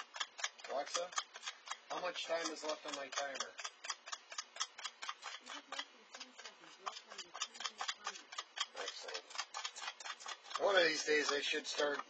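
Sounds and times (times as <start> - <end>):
stir stick scraping a cup: 0.0 - 12.0.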